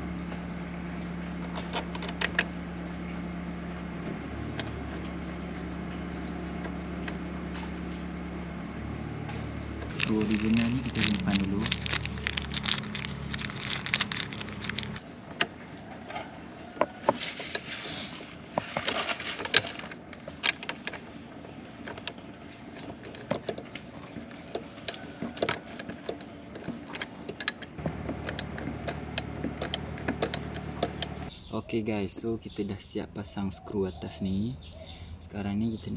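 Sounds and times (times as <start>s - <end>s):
steady low hum: 0.0s - 35.9s
plastic bag crinkling: 9.9s - 15.0s.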